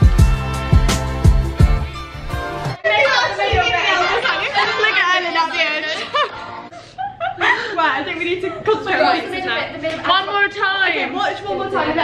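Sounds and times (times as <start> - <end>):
women talking: 2.8 - 6.3, 7.4 - 12.0
women laughing: 3.9 - 8.2.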